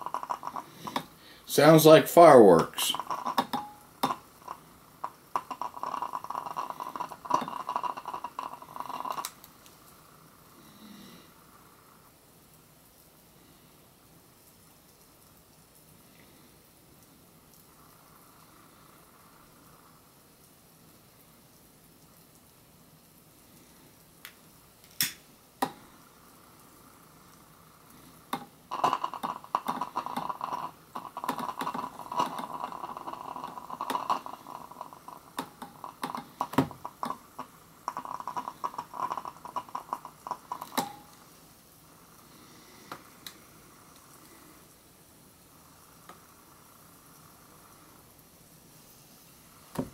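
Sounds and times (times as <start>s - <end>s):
hydrogen crackling and popping: 0.0s - 49.9s.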